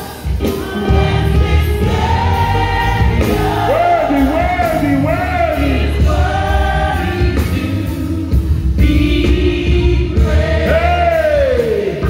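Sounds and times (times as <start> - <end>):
gospel group singing: 0.0 - 12.0
music with heavy bass: 0.0 - 12.0.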